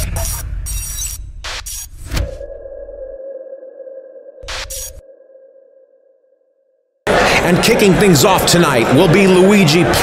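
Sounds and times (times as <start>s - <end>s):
ringing electronic tone: 2.3s - 6.9s.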